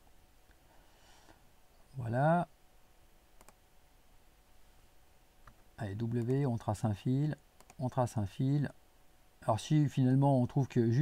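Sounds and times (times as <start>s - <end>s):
computer mouse clicks: 3.4s - 3.6s, 7.6s - 7.8s.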